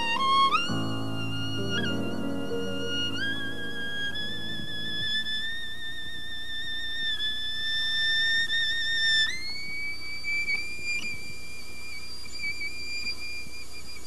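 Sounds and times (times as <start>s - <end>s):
solo violin high held note: 0.0s - 6.2s.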